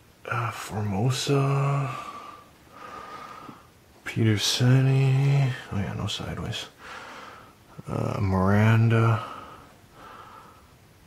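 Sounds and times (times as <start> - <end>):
person breathing in: 1.9 - 3.7, 6.8 - 7.6, 9.2 - 10.8.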